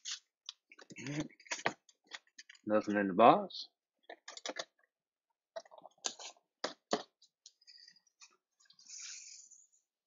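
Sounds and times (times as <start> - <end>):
man talking: 2.7 - 3.7.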